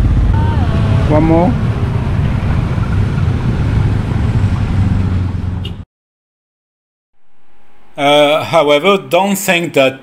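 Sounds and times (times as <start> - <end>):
low engine hum: 0.0 - 5.8
street traffic rumble: 0.0 - 5.9.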